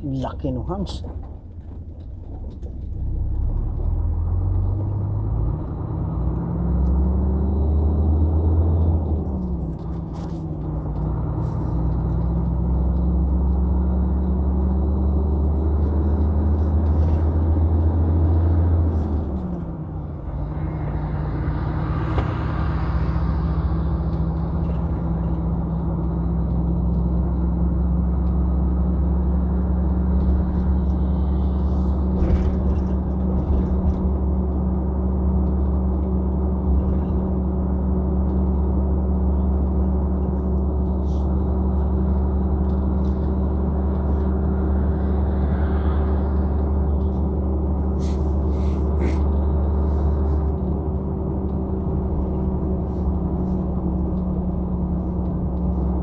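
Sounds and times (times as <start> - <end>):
truck diesel engine from cab: 0.0 - 56.0.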